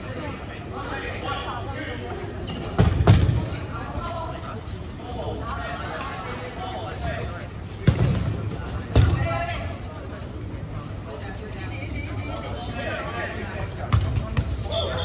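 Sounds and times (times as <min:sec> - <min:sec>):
players shouting and chattering: 0:00.0 - 0:15.0
dodgeballs thudding: 0:02.5 - 0:03.8, 0:07.7 - 0:09.6, 0:13.8 - 0:15.0.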